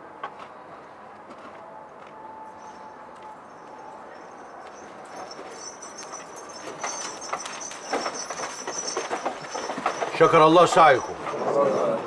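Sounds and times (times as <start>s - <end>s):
hoof clops: 4.6s - 12.0s
carriage wheels rattling: 4.8s - 12.0s.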